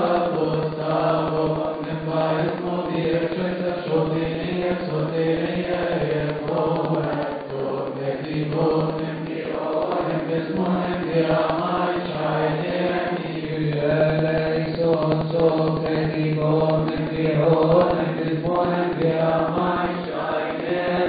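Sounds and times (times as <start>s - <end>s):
men chanting a hymn: 0.0s - 21.0s.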